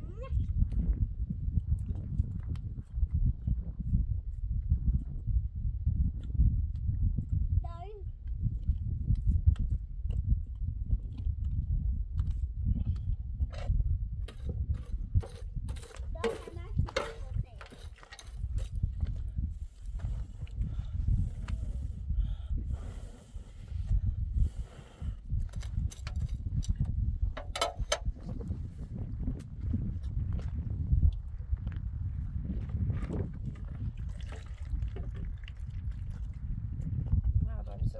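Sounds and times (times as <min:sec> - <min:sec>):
wind on microphone: 0:00.0 - 0:37.9.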